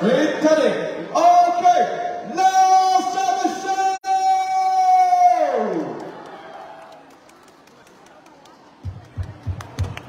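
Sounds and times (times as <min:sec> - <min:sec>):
man shouting into a microphone: 0:00.0 - 0:06.0.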